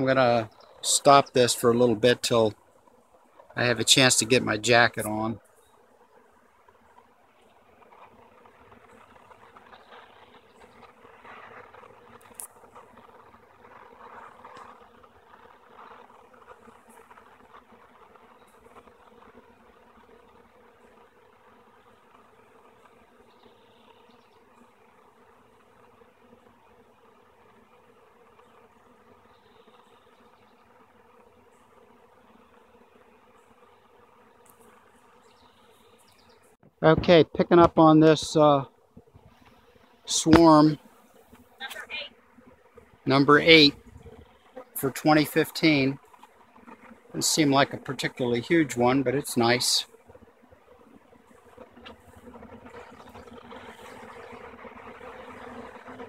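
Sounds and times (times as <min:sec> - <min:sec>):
hum of bee swarm: 0:00.0 - 0:56.0.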